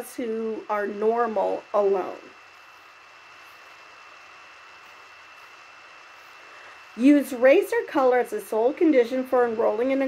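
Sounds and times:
faint high-pitched whine: 0.0s - 10.0s
steady background hiss: 0.0s - 10.0s.

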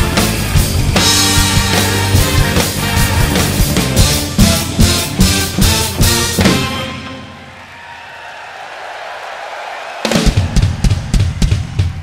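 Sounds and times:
rock drum kit playing: 0.0s - 7.5s, 10.0s - 12.0s
rock music: 0.0s - 7.7s.

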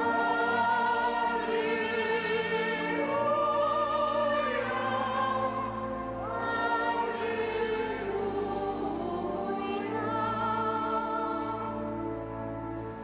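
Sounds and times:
choir singing a hymn: 0.0s - 13.0s
low steady accompaniment: 0.0s - 13.0s.

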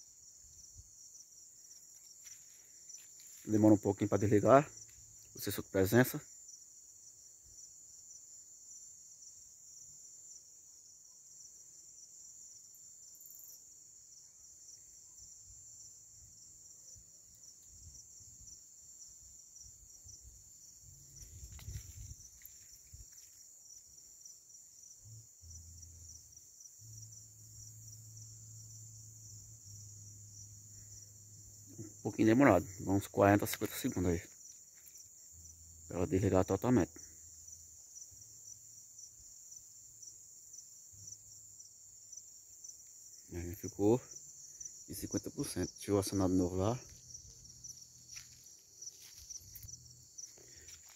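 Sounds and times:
crickets chirring: 0.0s - 50.9s.

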